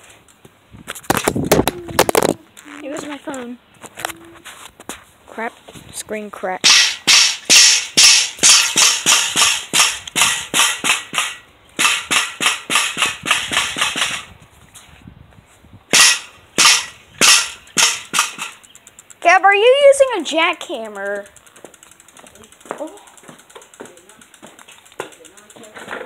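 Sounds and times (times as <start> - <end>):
pogo stick clanking on concrete: 0.0 - 14.4, 15.9 - 26.0.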